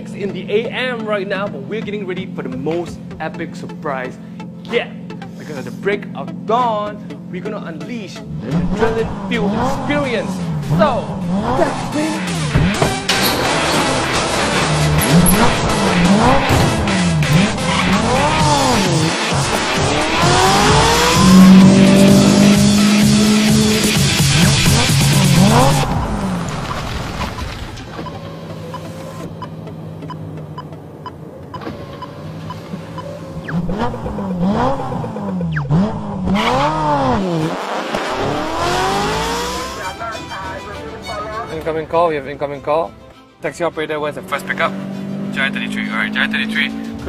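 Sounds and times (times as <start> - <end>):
sports car engine revving: 0.0 - 26.6, 28.0 - 41.3, 43.9 - 47.0.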